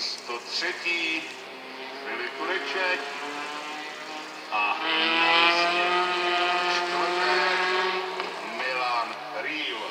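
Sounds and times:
race car engine running: 0.6s - 9.9s.

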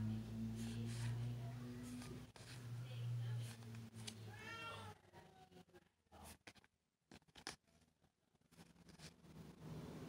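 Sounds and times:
cat meowing: 4.3s - 5.0s.

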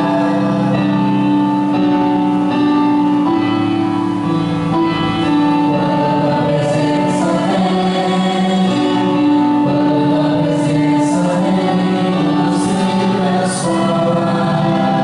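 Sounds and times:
voices singing gospel: 0.0s - 1.7s, 5.1s - 15.0s
band playing held chords: 0.0s - 15.0s.

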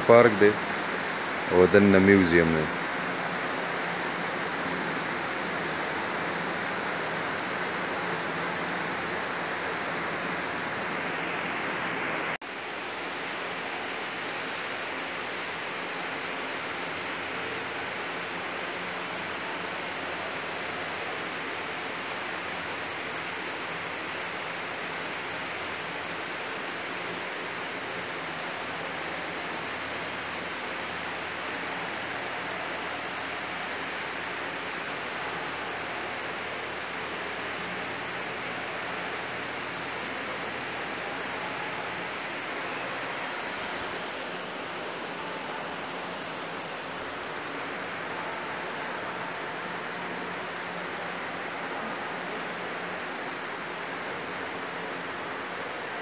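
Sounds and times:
indoor room hiss: 0.0s - 56.0s.

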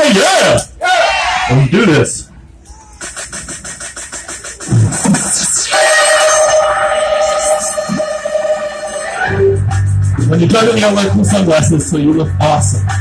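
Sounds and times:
fast ticking electronic beat: 3.0s - 13.0s
held synth chords: 3.3s - 13.0s.

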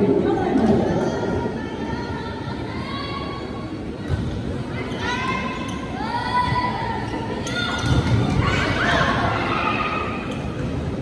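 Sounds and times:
hall background noise: 0.0s - 11.0s.

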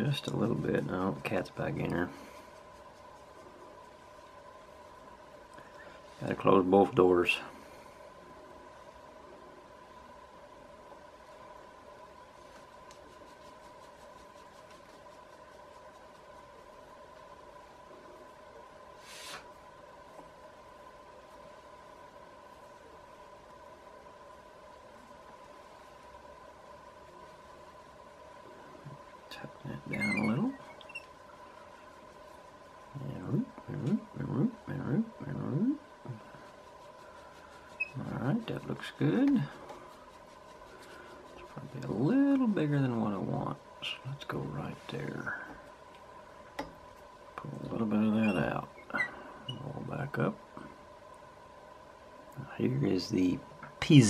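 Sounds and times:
low electrical hum: 0.0s - 54.0s.

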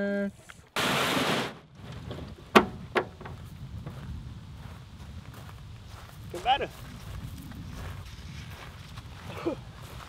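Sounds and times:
sharp knocks on canoe: 2.5s - 3.4s.

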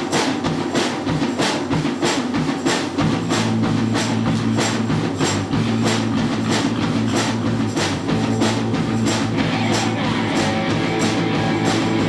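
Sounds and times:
punk rock band playing live: 0.0s - 12.0s.

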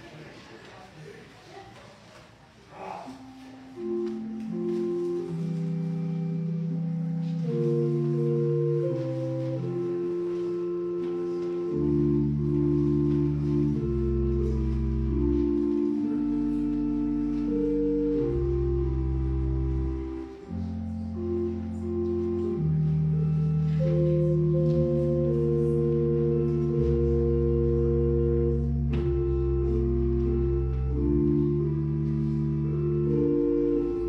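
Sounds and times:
organ playing slow chords: 3.2s - 34.0s
deep bass line: 20.8s - 34.0s.

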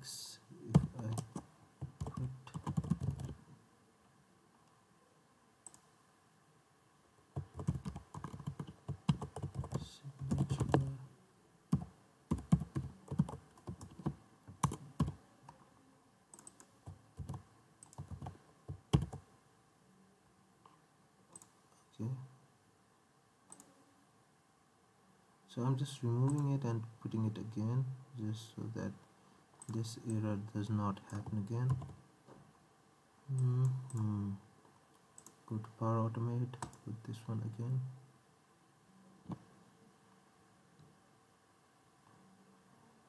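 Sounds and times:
typing on computer keyboard: 0.8s - 3.4s, 7.4s - 10.9s, 11.7s - 15.2s, 16.4s - 19.2s.

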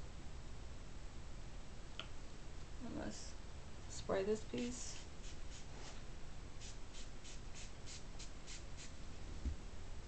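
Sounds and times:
spray bottle hissing: 6.6s - 8.9s.

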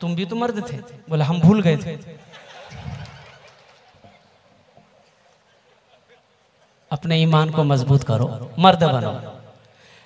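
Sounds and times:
laughter: 2.2s - 4.3s, 5.1s - 6.8s.

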